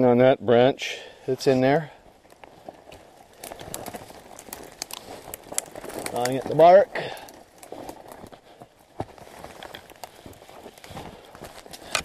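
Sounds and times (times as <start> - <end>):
twigs and branches snapping: 2.1 - 12.0
footsteps crunching in snow: 7.6 - 11.9.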